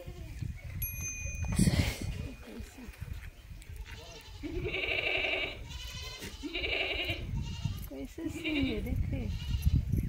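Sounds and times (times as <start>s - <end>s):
goat bleating: 3.8s - 9.8s.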